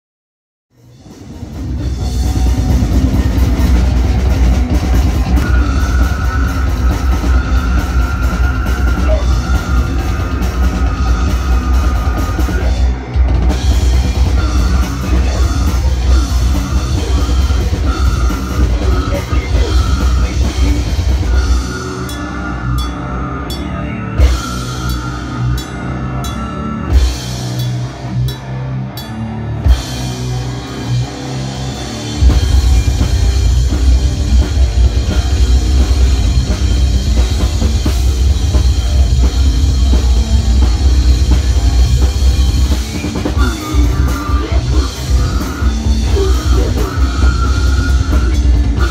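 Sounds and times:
bass guitar: 0.7s - 48.9s
death metal band playing: 0.7s - 48.9s
distorted guitars: 0.7s - 48.9s
drum kit: 0.7s - 48.9s.

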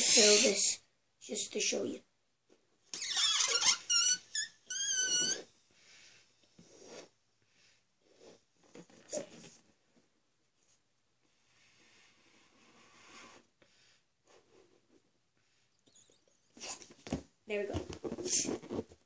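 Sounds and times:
balloon rubber squealing: 0.0s - 0.7s, 2.9s - 5.5s.

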